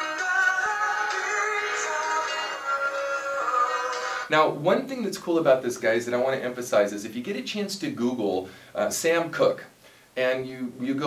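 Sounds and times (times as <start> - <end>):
rock ballad music: 0.0 - 4.3.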